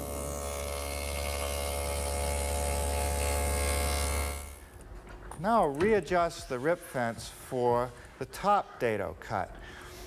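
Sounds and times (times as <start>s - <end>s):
table saw motor hum: 0.0s - 4.6s.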